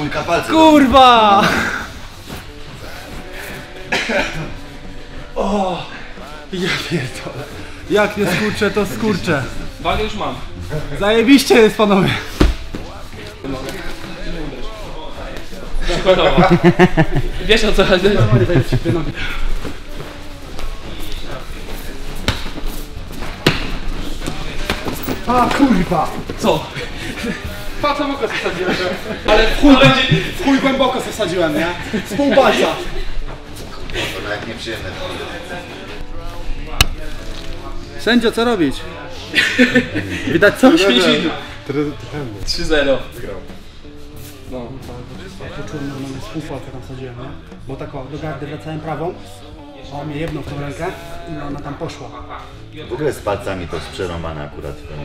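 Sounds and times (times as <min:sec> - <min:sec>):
faint background music: 0:00.0 - 0:55.0.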